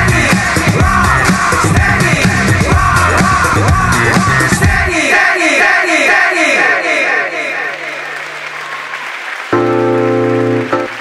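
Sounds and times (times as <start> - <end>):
audience applause: 7.4 - 11.0.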